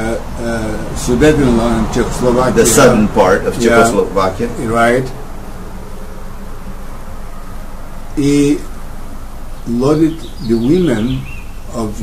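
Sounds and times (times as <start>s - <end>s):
low buzzing hum: 0.0s - 12.0s.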